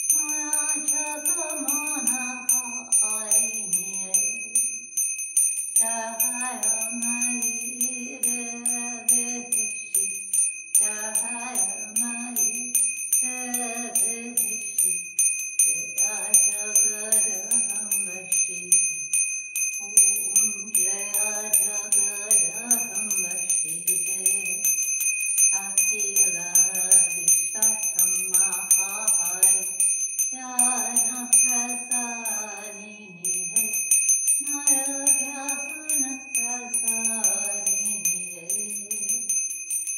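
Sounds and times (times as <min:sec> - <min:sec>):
brass hand bell ringing: 0:00.0 - 0:39.9.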